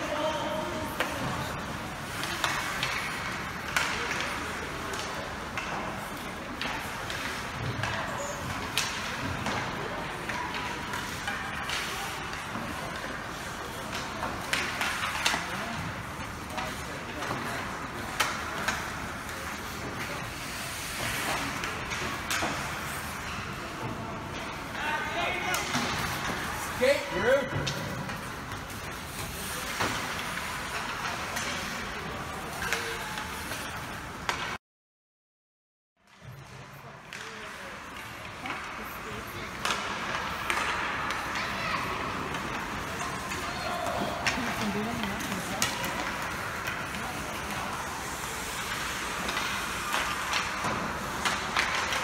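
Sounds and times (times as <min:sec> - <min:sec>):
hockey sticks clacking on puck: 0:00.0 - 0:34.6, 0:36.1 - 0:52.0
skate blades on ice: 0:00.0 - 0:34.6, 0:36.1 - 0:52.0.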